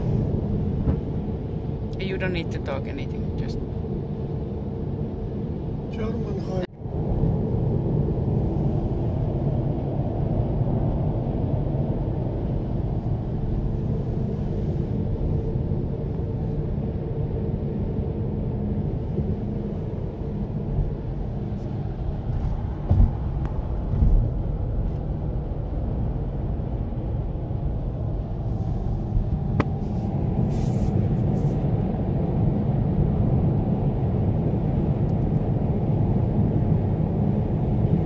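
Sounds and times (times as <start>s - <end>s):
car engine and road noise: 0.0s - 38.0s
short thumps: 22.3s - 24.4s.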